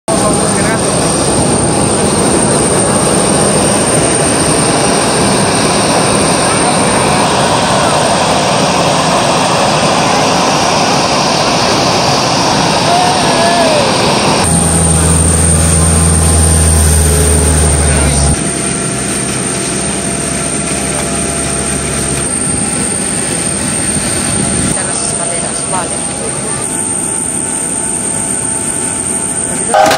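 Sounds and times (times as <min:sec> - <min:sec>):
people's voices: 0:00.1 - 0:03.2, 0:05.8 - 0:08.9, 0:17.5 - 0:18.4, 0:24.7 - 0:27.4
aircraft engine noise: 0:00.1 - 0:29.9
steady low hum: 0:14.0 - 0:29.9.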